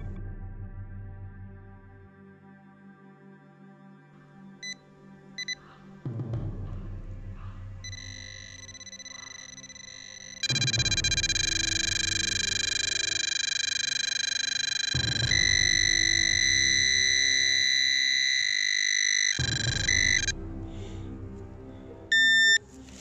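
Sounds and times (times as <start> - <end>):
short electronic beep: 7.9 - 18.4, 19.4 - 20.4, 22.1 - 22.6
pinpointer electronic tone: 7.9 - 20.4, 22.1 - 22.6.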